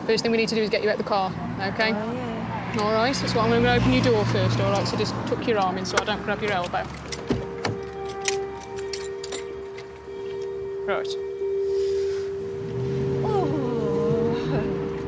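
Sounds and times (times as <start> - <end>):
car door opening: 5.9 - 10.5
music drone: 7.5 - 15.0.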